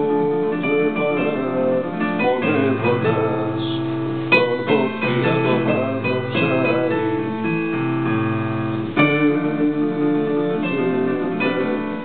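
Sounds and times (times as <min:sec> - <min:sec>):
digital piano playing slow song: 0:00.0 - 0:12.0.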